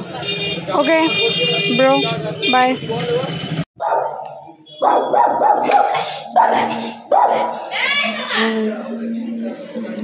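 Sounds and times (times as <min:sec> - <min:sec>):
dog barking: 0:03.8 - 0:07.7.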